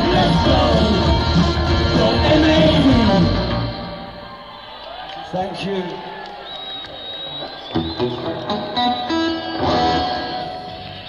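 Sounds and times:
electric guitar through amplifier: 6.7s - 11.0s.

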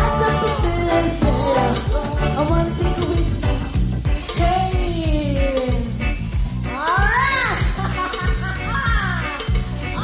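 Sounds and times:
reggae band playing: 0.0s - 10.0s.

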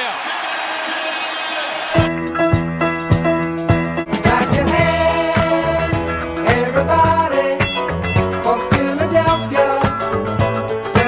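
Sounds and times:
arena crowd voices: 0.0s - 2.1s.

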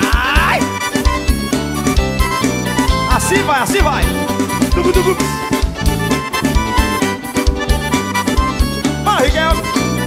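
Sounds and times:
steady drum beat: 0.0s - 8.8s
bass: 0.0s - 10.0s
accordion melody: 0.6s - 10.0s.

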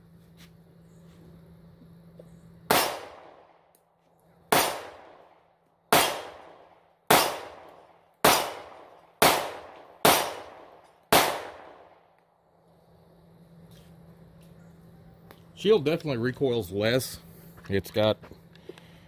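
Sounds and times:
pistol shots with echo: 2.7s - 3.6s, 4.5s - 5.3s, 5.9s - 12.1s.

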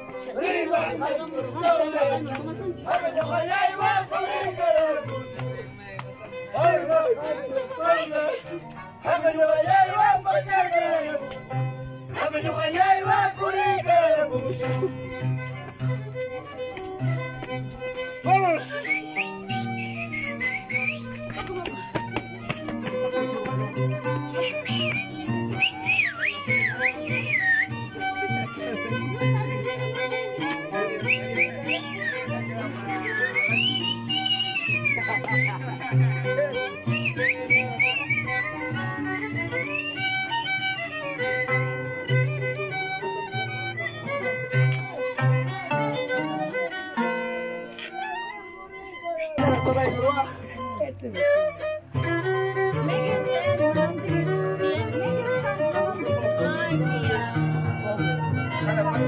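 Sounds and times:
violin melody: 0.0s - 59.0s
harp plucking bass line: 38.3s - 48.4s, 49.3s - 59.0s.

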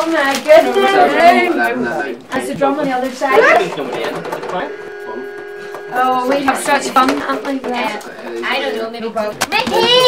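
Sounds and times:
toy electronic note: 0.7s - 1.8s, 3.2s - 8.8s.

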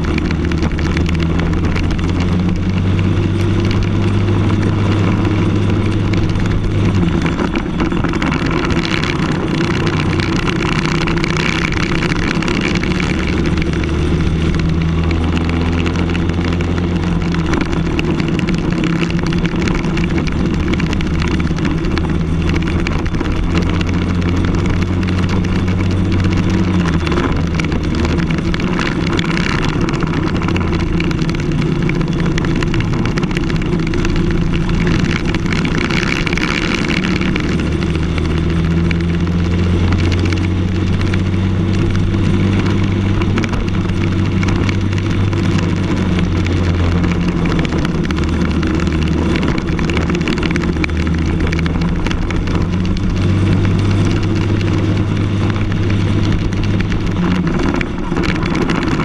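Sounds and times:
kart engine at racing speed: 0.0s - 59.0s
tyre noise: 0.0s - 59.0s
wind noise: 0.0s - 59.0s.

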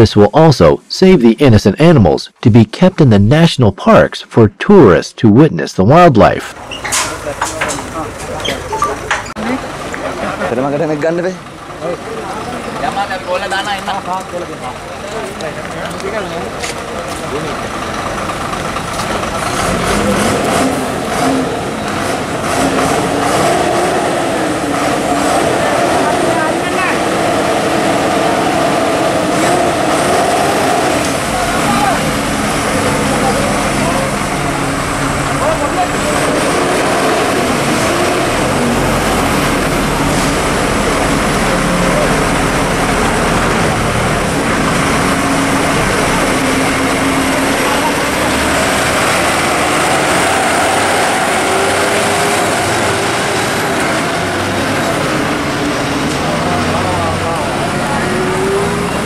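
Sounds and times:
crowd talking: 4.4s - 22.4s, 23.0s - 59.0s
truck diesel engine rumbling: 5.8s - 59.0s.

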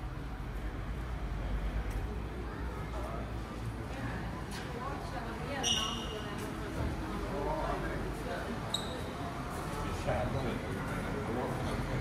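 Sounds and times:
short high-pitched squeak: 5.6s - 6.2s, 8.7s - 9.1s.

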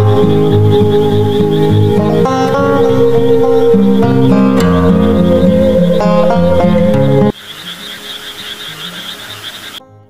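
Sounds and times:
frogs croaking with high trill: 0.0s - 9.8s
background music: 0.0s - 10.0s.

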